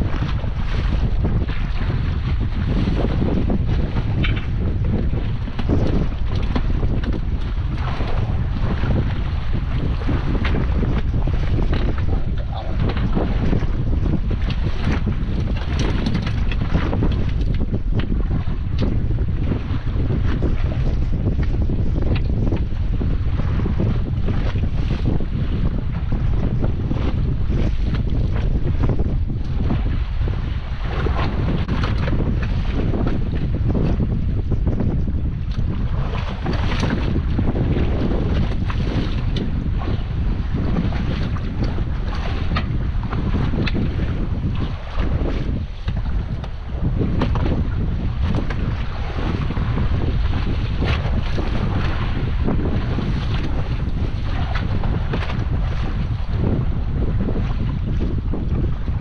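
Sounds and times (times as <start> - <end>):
waves washing around boat: 0.0 - 59.0
wind buffeting microphone: 0.0 - 59.0.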